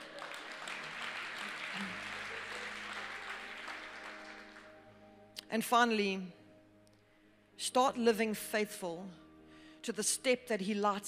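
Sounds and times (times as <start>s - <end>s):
audience applauding: 0.0s - 4.8s
soft background music pad: 0.0s - 11.0s.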